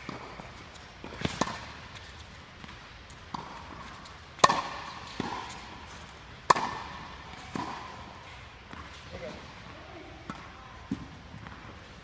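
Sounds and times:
racket hitting tennis ball: 0:00.0 - 0:09.6, 0:10.2 - 0:12.0.

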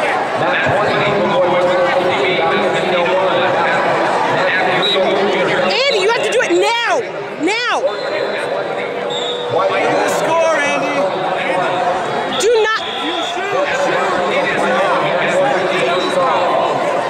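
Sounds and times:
chatter of many voices echoing: 0:00.0 - 0:17.0.

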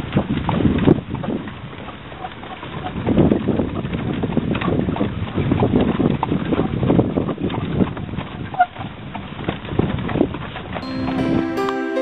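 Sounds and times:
wind buffeting microphone: 0:02.9 - 0:10.5.

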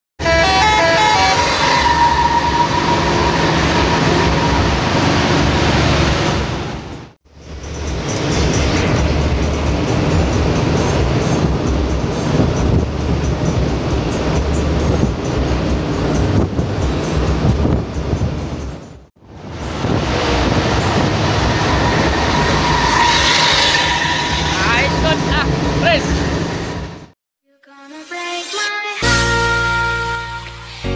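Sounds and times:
bus engine rumble and road noise: 0:00.2 - 0:27.2
run of high pitched notes: 0:00.3 - 0:05.7, 0:20.2 - 0:26.4
steady high tone: 0:00.3 - 0:06.1, 0:19.4 - 0:27.1.

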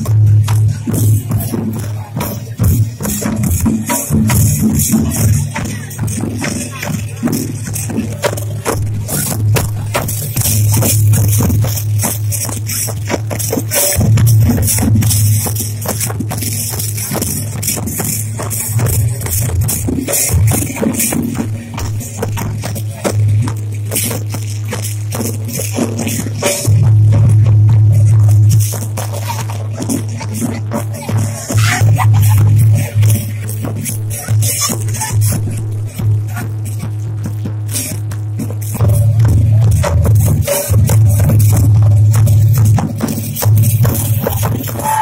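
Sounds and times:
rapid rattling percussion: 0:00.0 - 0:45.0
loud dance music: 0:30.9 - 0:33.3, 0:44.2 - 0:45.0.

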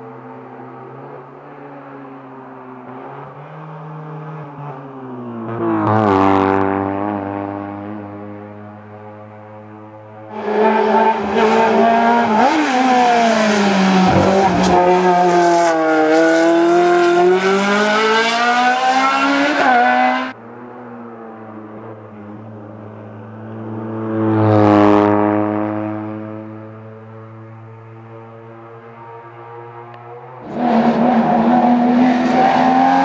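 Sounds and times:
rally car engine revving: 0:05.4 - 0:20.4, 0:29.9 - 0:33.0.

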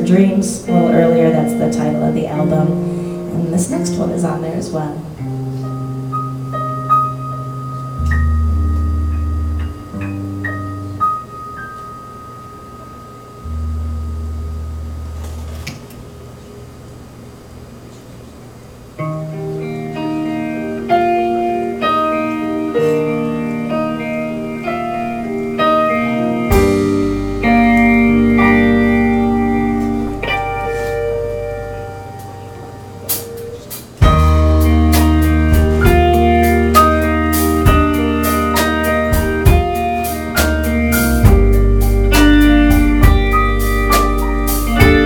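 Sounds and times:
low bass notes: 0:00.0 - 0:11.0, 0:13.4 - 0:16.2, 0:23.2 - 0:45.0
keyboard melody: 0:00.0 - 0:16.2, 0:19.0 - 0:45.0
electric guitar melody: 0:00.0 - 0:16.5, 0:18.9 - 0:45.0
drum hits: 0:33.1 - 0:45.0.

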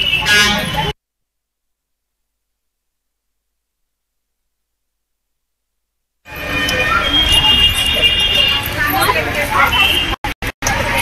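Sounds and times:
crowd talking: 0:06.3 - 0:11.0.

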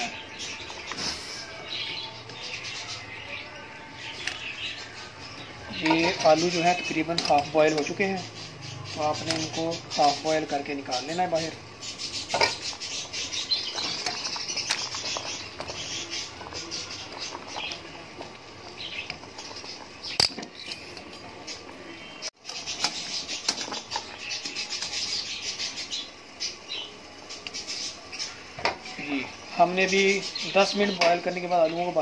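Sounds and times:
water boiling in a pot: 0:04.7 - 0:32.0
metal tongs clinking on pot: 0:05.8 - 0:08.0.

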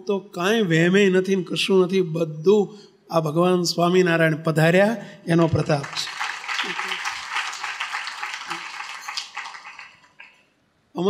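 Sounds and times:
audience applause: 0:05.8 - 0:10.4.

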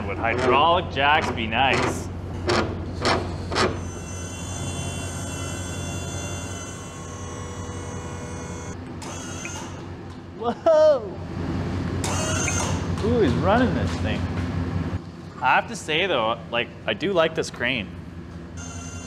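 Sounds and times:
crane motor whining: 0:00.0 - 0:10.4, 0:11.2 - 0:13.1, 0:18.3 - 0:19.0
constant low hum: 0:00.0 - 0:19.0.

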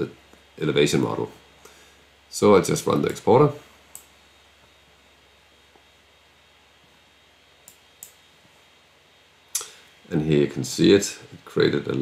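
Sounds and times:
short breath: 0:01.6 - 0:02.1.

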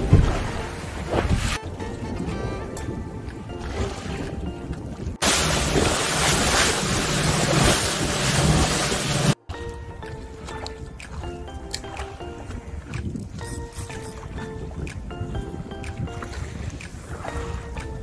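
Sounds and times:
background music: 0:00.0 - 0:05.2, 0:06.8 - 0:18.0
choppy sea: 0:00.0 - 0:18.0
wind on microphone: 0:12.4 - 0:18.0.

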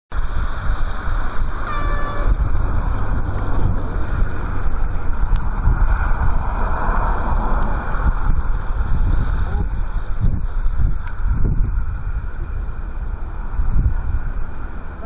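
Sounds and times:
steady rushing noise: 0:00.1 - 0:15.0
wind buffeting microphone: 0:00.1 - 0:15.0
short horn toot: 0:01.6 - 0:02.4.

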